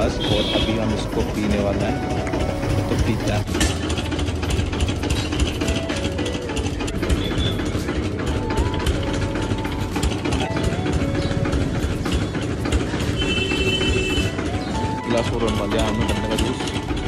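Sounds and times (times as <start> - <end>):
engine idling with rattle: 0.0 - 17.0
faint background music: 0.0 - 17.0.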